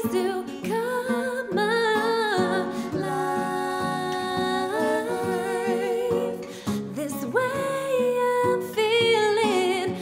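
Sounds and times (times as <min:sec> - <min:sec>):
strummed acoustic guitar: 0:00.0 - 0:10.0
person singing long notes: 0:00.7 - 0:08.6.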